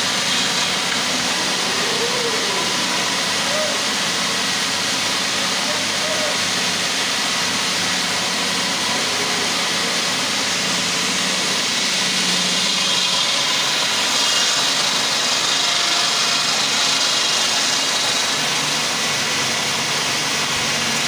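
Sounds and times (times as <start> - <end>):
stone-cutting saw grinding whine: 0.0 - 21.0.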